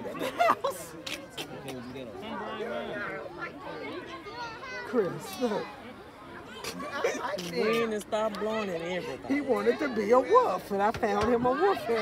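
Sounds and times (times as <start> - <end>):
chatter of spectators: 0.0 - 12.0
children's voices: 2.6 - 12.0.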